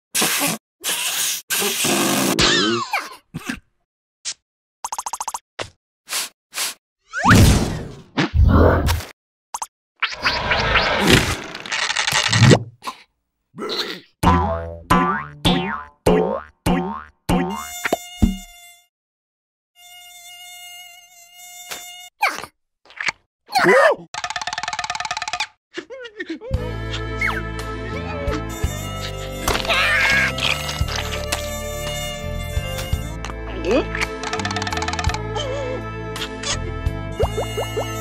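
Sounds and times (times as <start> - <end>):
mosquito buzzing whine: 17.6 - 18.9, 19.8 - 22.1, 30.6 - 33.2
cartoon sound effects: 28.5 - 30.8.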